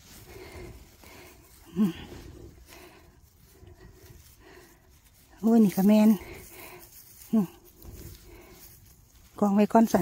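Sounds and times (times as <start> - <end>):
hand rustling dry grass: 0.0 - 10.0.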